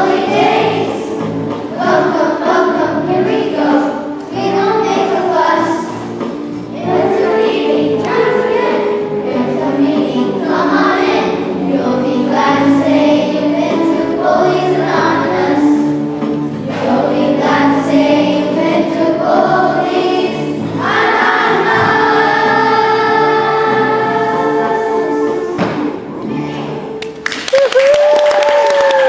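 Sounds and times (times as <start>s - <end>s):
children's choir singing: 0.0s - 27.0s.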